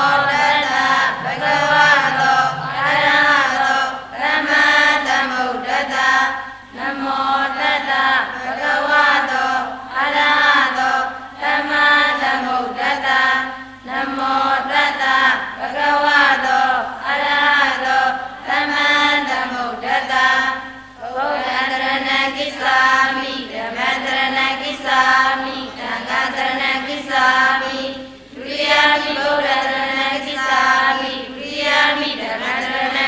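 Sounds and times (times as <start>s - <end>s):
women chanting in unison: 0.0s - 33.0s.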